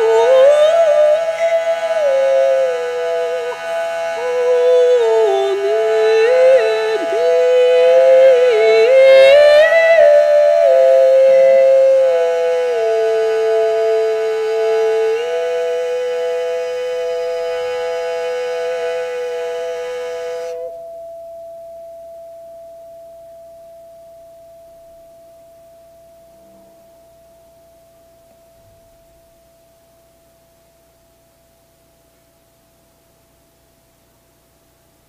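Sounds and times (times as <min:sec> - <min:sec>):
woman singing long notes: 0:00.0 - 0:20.9
singing bowl ringing: 0:20.3 - 0:32.0.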